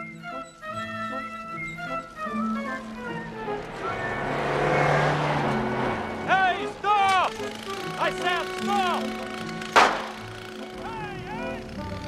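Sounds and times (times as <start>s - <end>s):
high squeals: 0.0s - 11.7s
film score music: 0.0s - 12.0s
car speeding past: 2.2s - 10.4s.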